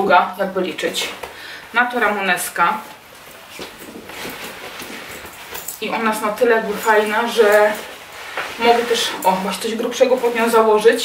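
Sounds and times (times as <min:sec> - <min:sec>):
leather jacket rustling: 0:02.0 - 0:11.0.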